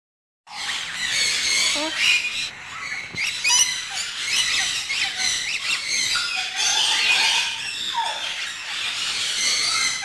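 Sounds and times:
parrots screeching: 0.5s - 10.0s.

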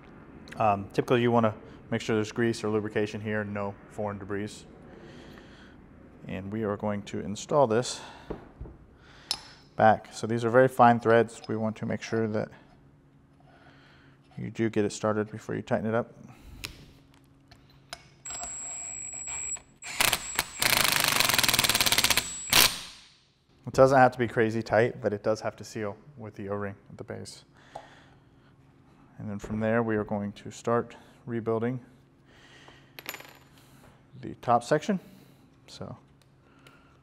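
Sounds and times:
impact driver motor whine: 18.3s - 22.8s.

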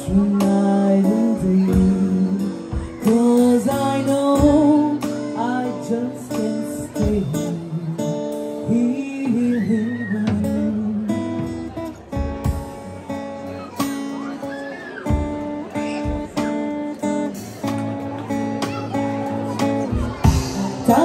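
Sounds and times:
woman singing into a microphone: 0.0s - 11.7s, 20.4s - 21.0s
strummed acoustic guitar: 0.0s - 21.0s.

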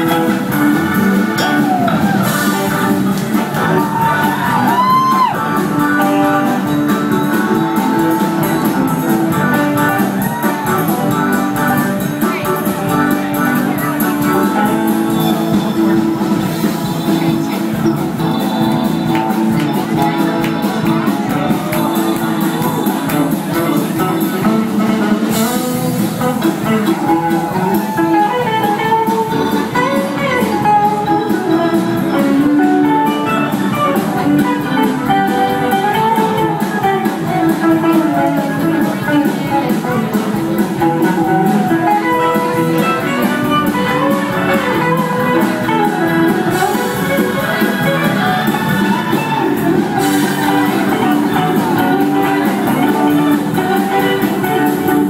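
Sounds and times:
drum kit beat: 0.0s - 55.0s
electric guitar: 0.0s - 55.0s
live band playing: 0.0s - 55.0s.

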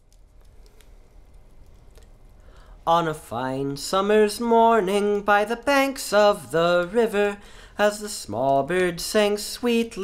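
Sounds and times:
faint clicks and ticks: 0.0s - 2.7s
low steady hum: 0.0s - 10.0s.

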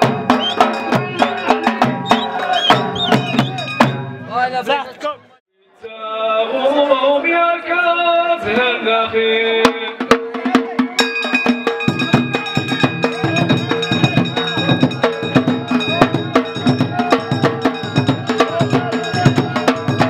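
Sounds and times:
hand-struck frame drums: 0.0s - 4.2s, 9.6s - 20.0s
man's amplified voice: 0.7s - 2.0s, 3.1s - 20.0s
high steady ringing tones: 11.0s - 20.0s.

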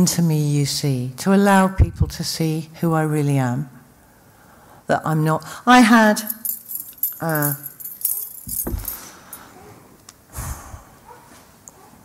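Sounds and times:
light metallic jingling: 6.2s - 9.5s.

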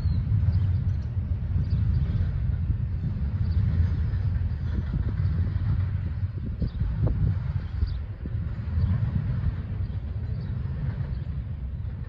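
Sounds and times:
distant freight train rumbling: 0.0s - 12.0s.

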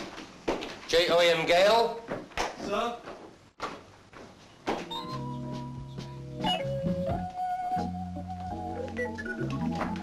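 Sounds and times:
music: 4.8s - 10.0s.

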